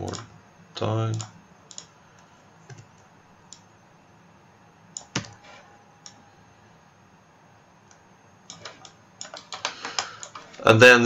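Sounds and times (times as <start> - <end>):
keyboard and mouse clicks: 1.1 - 1.9, 2.6 - 3.7, 5.0 - 5.4, 7.8 - 10.5.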